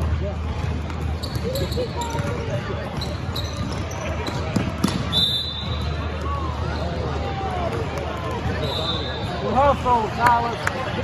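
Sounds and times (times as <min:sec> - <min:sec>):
spectators chatter: 0:00.0 - 0:11.0
sneakers squeaking: 0:00.8 - 0:07.2, 0:08.4 - 0:09.4.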